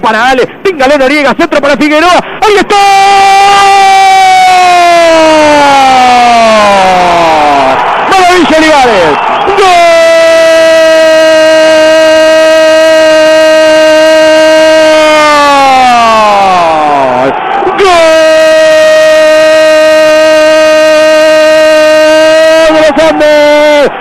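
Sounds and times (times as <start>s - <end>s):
radio commentator's goal cry: 0.0s - 24.0s.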